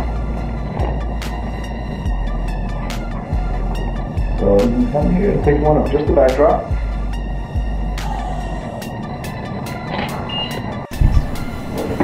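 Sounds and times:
background music with beat: 0:00.0 - 0:12.0
deep bass hit: 0:10.9 - 0:12.0.

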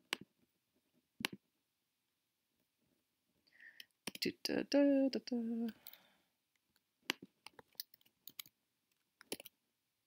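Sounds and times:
keyboard and mouse clicks: 0:00.0 - 0:00.3, 0:01.2 - 0:01.4, 0:03.8 - 0:04.3, 0:06.6 - 0:09.6.

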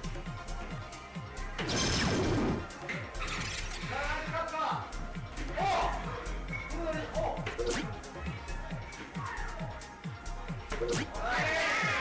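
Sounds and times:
background music with steady beat: 0:00.0 - 0:12.0
dart machine crashing sound effect: 0:01.6 - 0:02.7.

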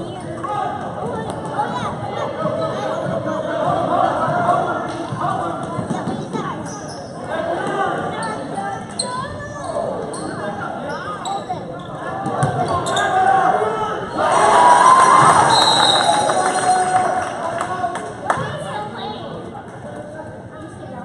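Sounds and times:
echoing crowd voices: 0:00.0 - 0:21.0.

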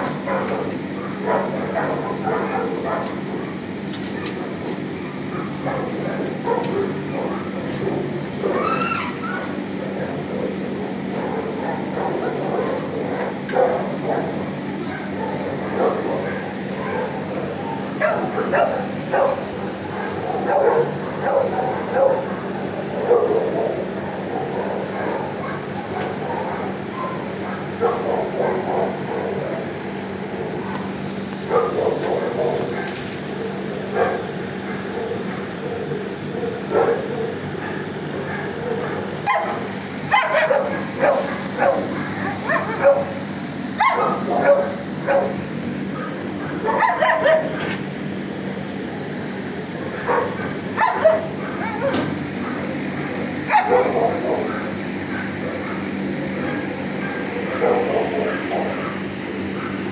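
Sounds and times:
dogs barking and yipping: 0:00.0 - 0:59.9
steady low hum: 0:00.0 - 0:59.9.

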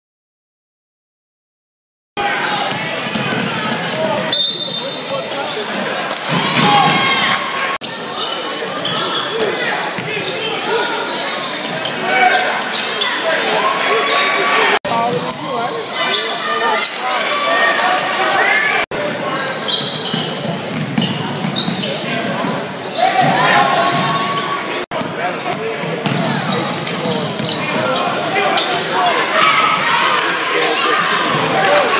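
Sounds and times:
crowd voices calling out: 0:02.2 - 0:31.9.

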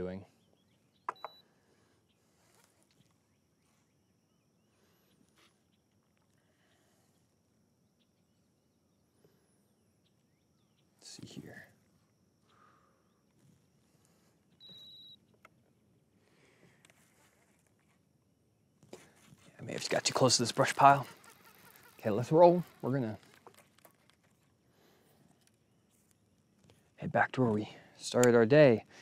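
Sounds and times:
short high-pitched beep: 0:14.6 - 0:15.2
brief rustle: 0:18.8 - 0:24.5.

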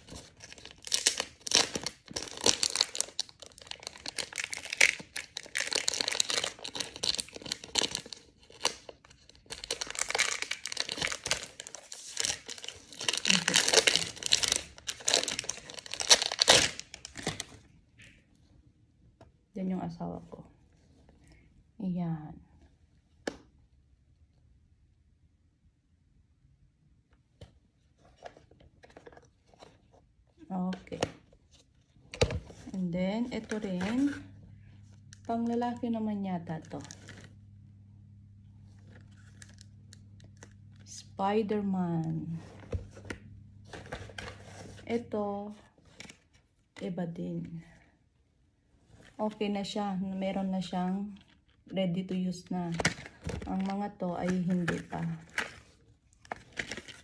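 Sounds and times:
plastic packaging clicking: 0:00.0 - 0:17.6, 0:52.7 - 0:57.0
plastic pencil case moved: 0:42.5 - 0:45.0, 0:52.7 - 0:57.0.

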